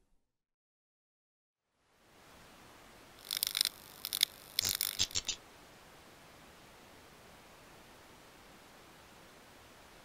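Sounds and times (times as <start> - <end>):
faint steady hiss: 1.6 - 10.0
electronic clicking and crackling: 3.2 - 5.4.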